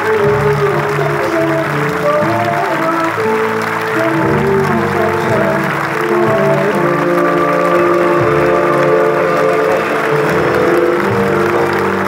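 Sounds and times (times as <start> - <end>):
audience clapping: 0.0 - 12.0
live band music: 0.0 - 12.0.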